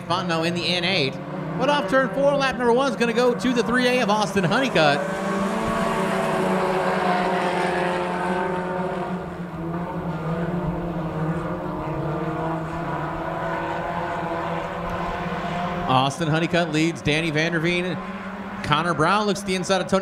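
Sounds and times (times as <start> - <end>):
race car engines: 0.0 - 20.0.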